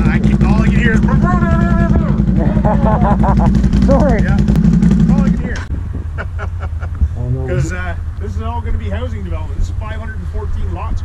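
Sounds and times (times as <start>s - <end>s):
engine idling: 0.0s - 5.7s
voices: 0.0s - 11.0s.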